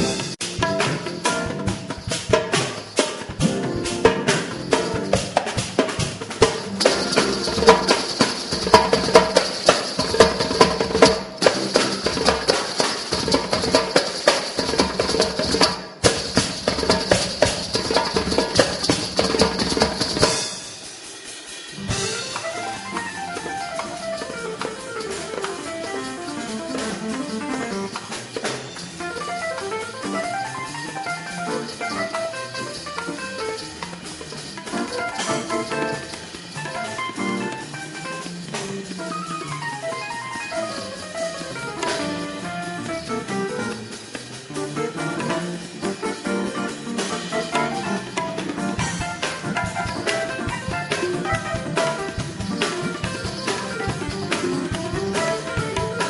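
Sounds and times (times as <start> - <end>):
melodic keyboard passage: 0.0 - 14.0, 21.8 - 56.0
drum kit and percussion: 0.0 - 56.0.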